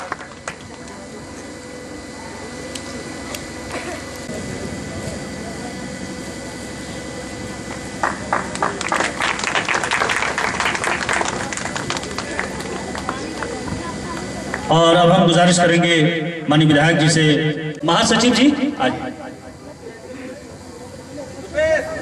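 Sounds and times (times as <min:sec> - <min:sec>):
audience clapping: 0:00.0 - 0:00.8, 0:08.0 - 0:14.7
crowd voices: 0:00.0 - 0:22.0.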